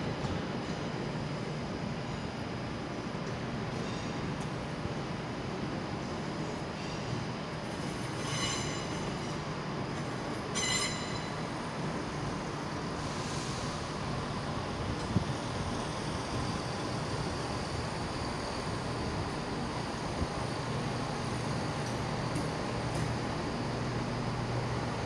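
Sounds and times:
train low rumble: 0.0s - 25.0s
high-pitched squeals: 8.2s - 9.4s.

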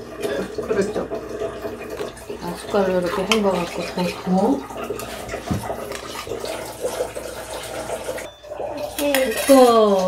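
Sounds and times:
metal spoon scraping bowl: 2.0s - 8.0s, 8.9s - 10.0s.

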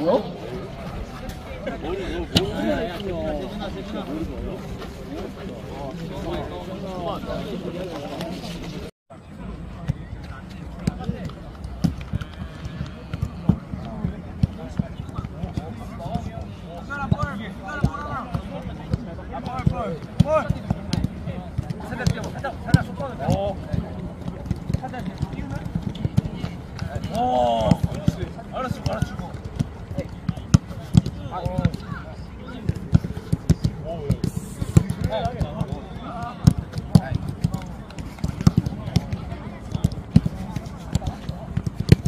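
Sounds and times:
footballs kicked and bounced: 0.0s - 8.9s, 9.5s - 42.0s
murmur of voices: 0.0s - 42.0s.

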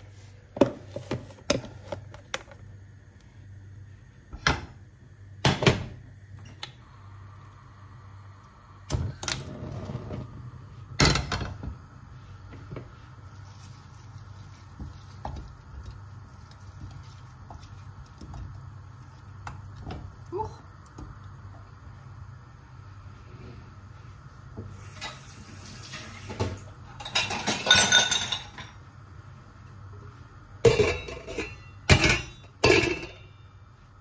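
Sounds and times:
steady low hum: 0.0s - 24.8s
utensils and cookware clattering: 24.9s - 28.8s, 30.6s - 33.3s.

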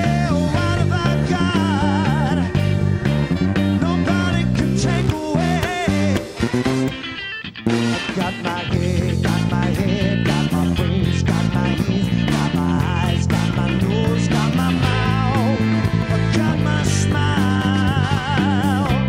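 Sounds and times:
swing big band playing: 0.0s - 19.0s.

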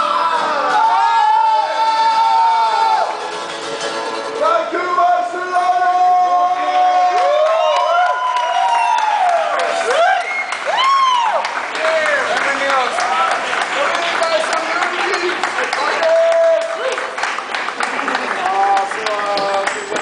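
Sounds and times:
people shouting and whooping: 0.0s - 3.4s, 4.7s - 12.4s, 13.0s - 20.0s
mandolin and acoustic guitars playing: 0.0s - 6.6s
crowd cheering: 0.0s - 20.0s.

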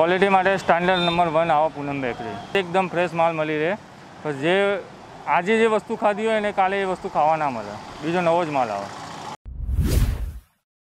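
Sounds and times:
whoosh transition effect: 9.5s - 10.6s.

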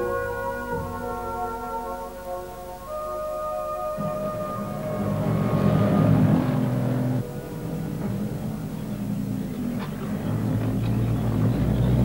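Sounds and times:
tank engine and tracks rumbling: 3.8s - 12.0s.

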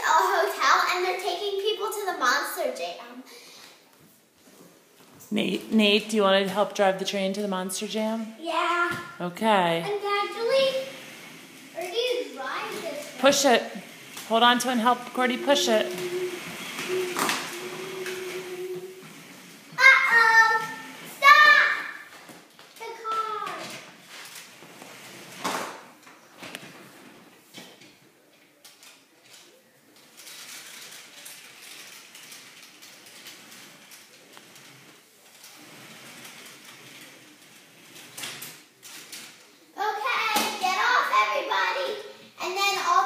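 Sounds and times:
child talking: 0.0s - 3.3s, 8.4s - 9.2s, 9.8s - 11.1s, 11.8s - 13.2s, 15.4s - 19.0s, 19.8s - 22.1s, 22.8s - 23.8s, 39.8s - 43.0s.

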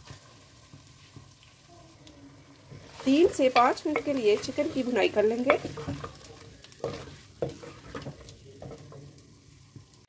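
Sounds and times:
chicken sizzling in oil: 0.0s - 10.0s
spoon scraping and knocking pot: 2.8s - 9.2s.

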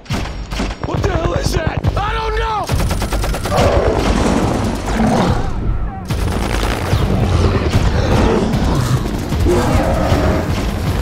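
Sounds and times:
rapid machine-gun fire: 2.6s - 5.1s, 6.1s - 11.0s.

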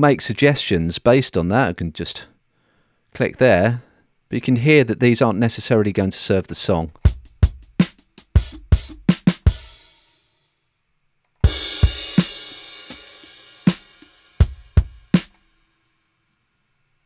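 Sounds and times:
kick and snare drum hits: 7.0s - 9.8s, 11.4s - 13.1s, 13.7s - 15.4s
cymbal crash: 11.5s - 15.4s.

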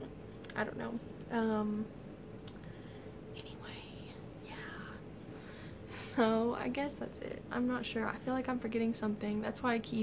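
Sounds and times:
woman whispering: 3.3s - 5.0s.

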